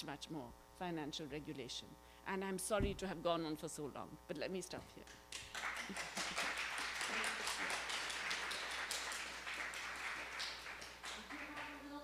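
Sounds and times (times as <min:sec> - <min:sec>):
audience applauding: 0:05.3 - 0:12.0.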